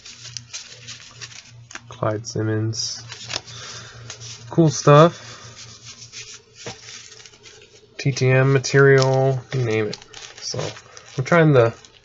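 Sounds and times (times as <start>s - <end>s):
cards sliding and scraping: 0.0s - 1.9s, 3.0s - 12.0s.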